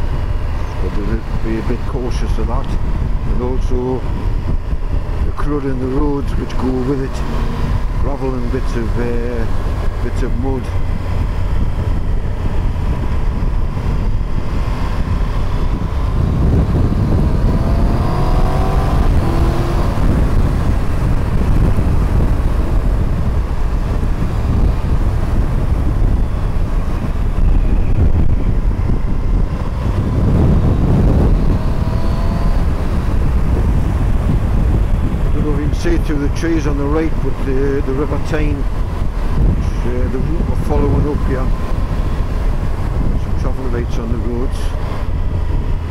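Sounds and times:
motorcycle engine accelerating: 0.0s - 45.9s
wind noise on microphone: 0.0s - 45.9s.

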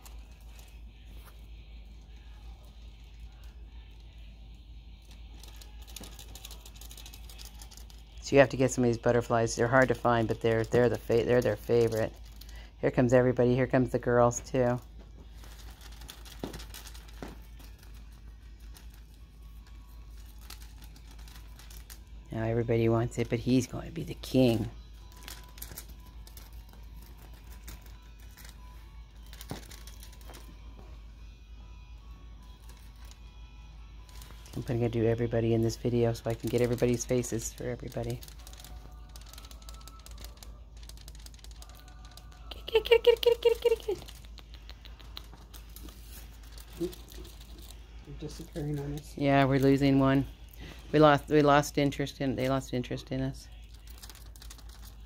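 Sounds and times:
feather toy rustling and crinkling: 0.0s - 30.9s, 32.4s - 55.0s
kittens scratching on fabric: 0.0s - 31.0s, 32.4s - 52.6s, 53.5s - 55.0s
faint background music: 0.0s - 55.0s.

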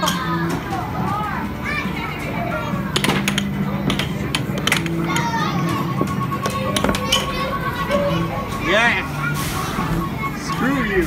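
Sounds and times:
children's voices: 0.0s - 3.1s, 4.7s - 11.0s
air hockey puck clacking: 2.9s - 5.4s
arcade game music and beeps: 5.6s - 11.0s.

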